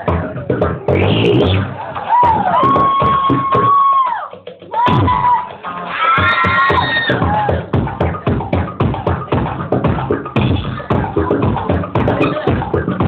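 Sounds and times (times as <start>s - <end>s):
homemade pipe instrument beat: 0.0s - 13.0s
high whoops: 2.0s - 7.6s.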